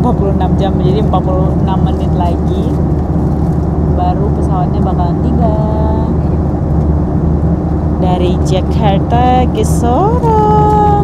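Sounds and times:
airliner cabin drone: 0:00.0 - 0:11.0.

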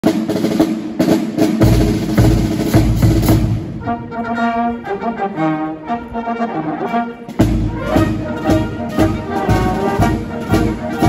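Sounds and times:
snare drum strokes and rolls: 0:00.0 - 0:04.2, 0:06.9 - 0:11.0.

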